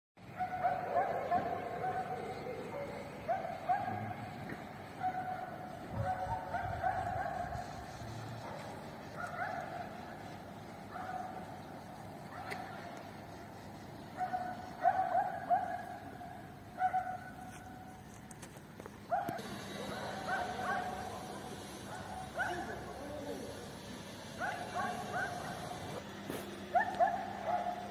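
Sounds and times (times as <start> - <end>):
distant dog barking: 0.2 - 13.1, 13.7 - 17.8, 19.1 - 26.0, 26.6 - 27.9
low hiss of open air: 0.2 - 27.9.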